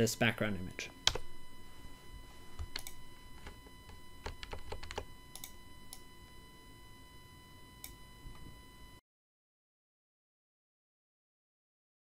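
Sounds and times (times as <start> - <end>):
keyboard and mouse clicks: 2.6 - 3.6, 4.2 - 6.0.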